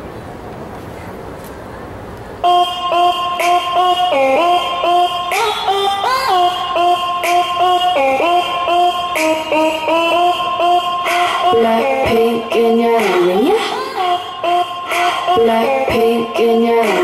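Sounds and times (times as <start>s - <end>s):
dance-pop backing track: 2.4s - 17.0s
synth lead melody: 2.4s - 17.0s.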